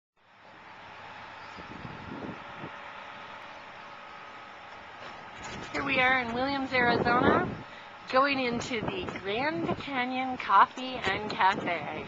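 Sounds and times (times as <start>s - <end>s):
street traffic rumble: 0.2s - 12.0s.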